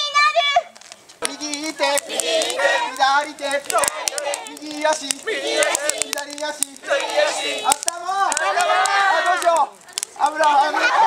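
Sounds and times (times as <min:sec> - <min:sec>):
sharp clicks: 0:00.8 - 0:10.6
children singing in chorus: 0:01.3 - 0:04.6.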